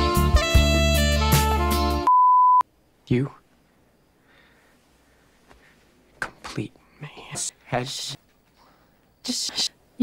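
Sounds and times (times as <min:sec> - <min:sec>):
saxophone and drums music: 0:00.0 - 0:02.1.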